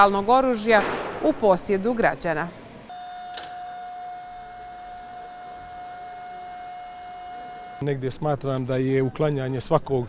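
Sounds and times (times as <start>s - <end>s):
furnace high-pitched whine: 2.9s - 7.8s.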